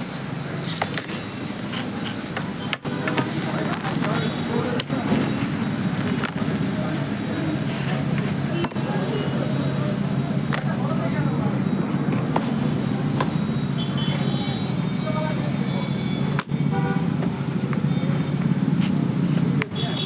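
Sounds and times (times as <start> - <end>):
faint voices: 1.8 - 20.0.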